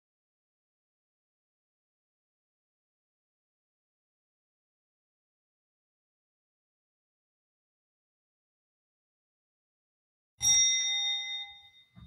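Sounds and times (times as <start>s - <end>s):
bell-like chime: 10.4s - 12.0s.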